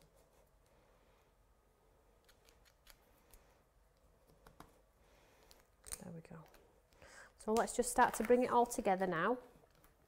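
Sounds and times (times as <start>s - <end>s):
faint clicks and taps of tools: 2.2s - 4.8s, 5.4s - 8.4s.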